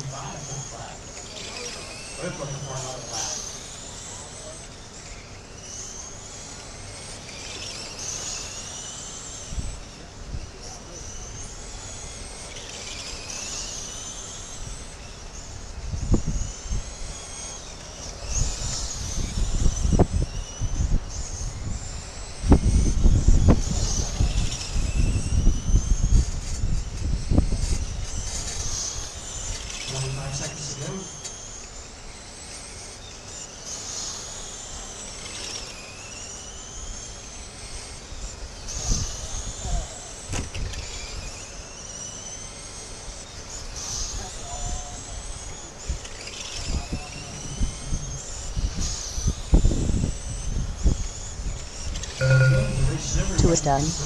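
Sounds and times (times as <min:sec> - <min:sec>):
rc race cars motor whine: 0:00.0 - 0:52.2.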